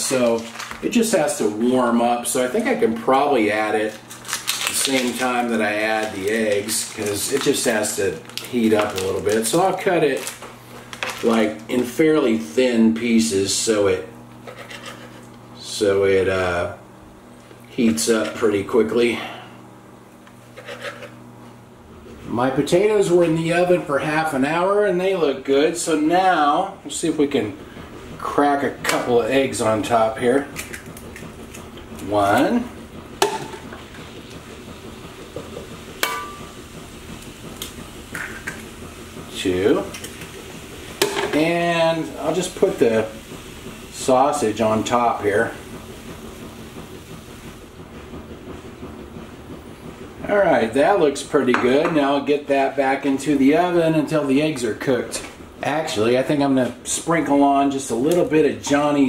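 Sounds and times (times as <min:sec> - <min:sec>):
low room noise rumble: 0:00.0 - 0:59.0
steady low hum: 0:00.0 - 0:59.0.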